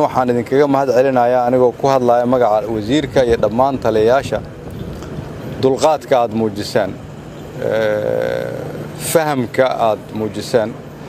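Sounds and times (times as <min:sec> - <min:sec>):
man talking: 0:00.0 - 0:04.5, 0:05.6 - 0:10.8
steady low hum: 0:00.0 - 0:11.0
man's drawn-out hesitation sound: 0:05.5 - 0:11.0.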